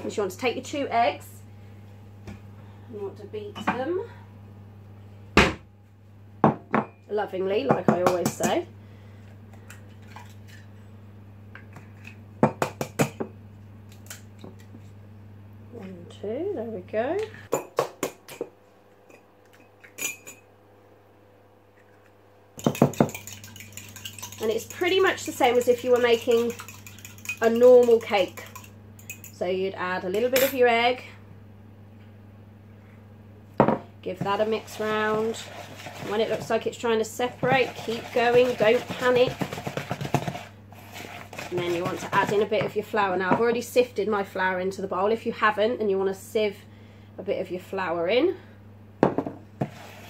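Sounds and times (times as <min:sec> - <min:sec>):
steady low hum: 0:00.0 - 0:49.7
eggs clinking against ceramic mug: 0:22.6 - 0:29.4.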